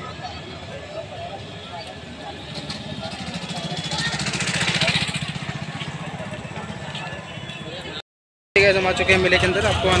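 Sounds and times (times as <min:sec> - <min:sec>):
motorcycle engine passing: 0:02.4 - 0:07.4.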